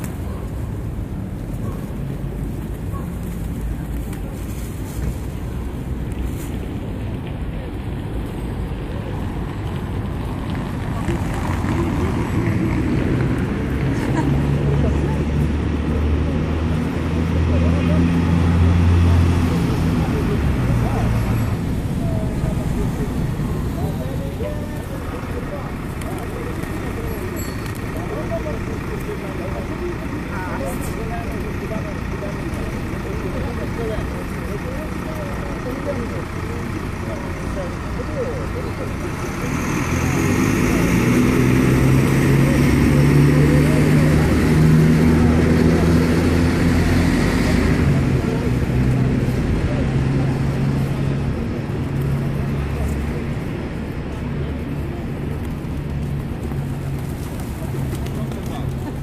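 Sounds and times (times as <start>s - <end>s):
city traffic noise: 0.0s - 59.0s
heavy vehicle engine running: 5.0s - 59.0s.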